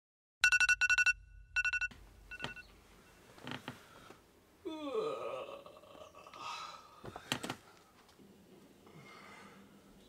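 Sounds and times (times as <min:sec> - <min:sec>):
electronic alarm beeping: 0:00.4 - 0:02.7.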